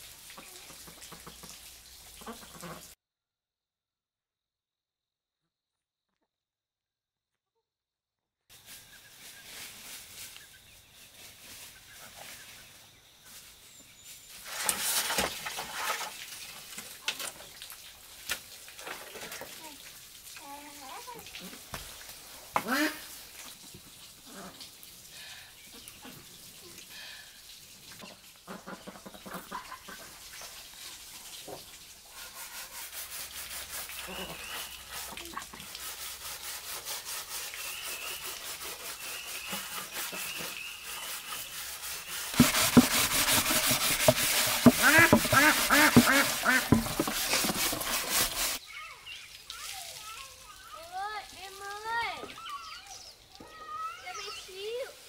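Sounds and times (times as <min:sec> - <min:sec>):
ducks quacking: 0:02.2 - 0:03.0, 0:22.6 - 0:23.1, 0:28.5 - 0:30.1, 0:43.7 - 0:47.9.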